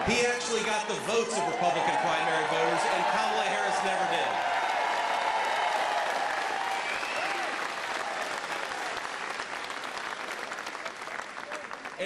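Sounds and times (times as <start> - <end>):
large crowd applauding: 0.0 - 12.0.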